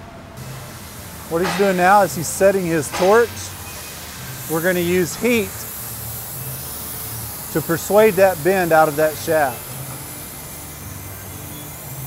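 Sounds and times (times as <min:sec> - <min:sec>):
torch burning with steady hiss: 0:00.4 - 0:12.0.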